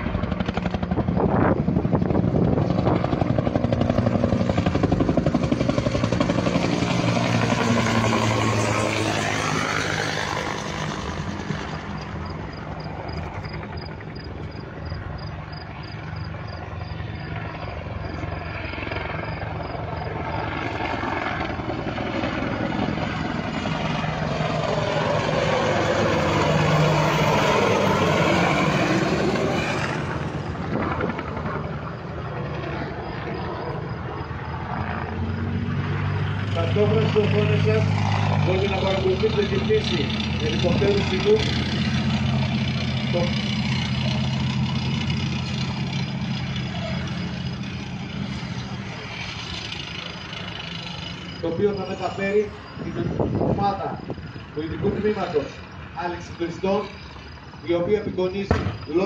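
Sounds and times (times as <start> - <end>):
helicopter flying past: 0.0 - 59.0.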